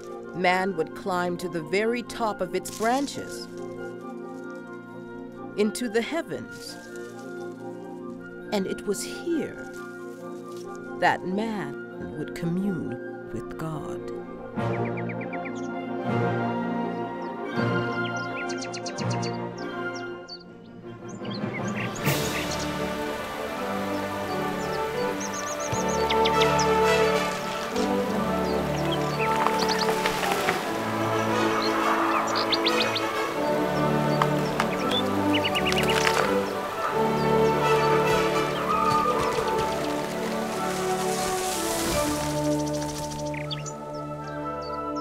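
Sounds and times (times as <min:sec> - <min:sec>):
wind band playing chords: 0:21.9 - 0:42.5
high bird-like chirps: 0:31.1 - 0:44.4.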